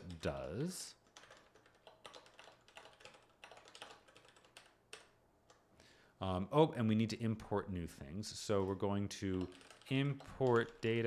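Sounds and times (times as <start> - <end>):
typing on computer keyboard: 0.0 - 5.6, 8.6 - 11.0.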